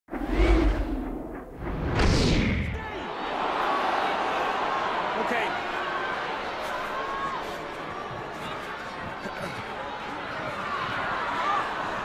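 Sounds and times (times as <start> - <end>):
swooshing whoosh: 0.1 - 2.8
deep boom with whoosh: 0.1 - 2.9
stadium crowd hum: 0.3 - 12.0.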